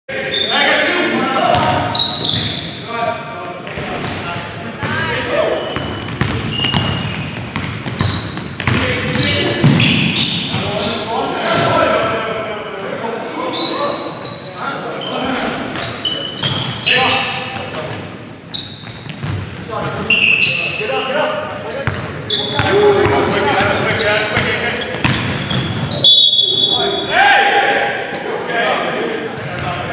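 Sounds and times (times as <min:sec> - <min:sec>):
sneakers squeaking: 0:00.1 - 0:03.0, 0:03.6 - 0:12.1, 0:13.0 - 0:28.4, 0:29.2 - 0:29.9
basketball bouncing on hardwood: 0:05.8 - 0:08.8, 0:24.4 - 0:25.9
players calling out: 0:07.9 - 0:29.9.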